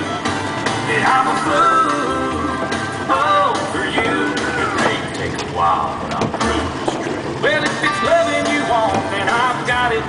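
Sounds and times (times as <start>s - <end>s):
low rumble: 0.0s - 10.0s
water splashing: 0.5s - 9.8s
person singing: 0.9s - 5.8s.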